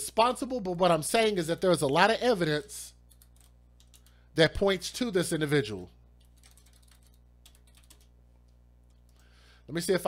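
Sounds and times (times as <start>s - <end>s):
steady low hum: 0.0s - 10.0s
keyboard typing: 3.1s - 4.2s, 6.2s - 9.2s.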